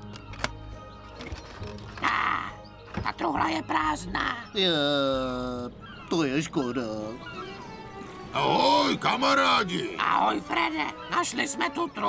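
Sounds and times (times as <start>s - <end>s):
lock clicking open: 0.0s - 2.0s
quiet background music: 0.0s - 12.0s.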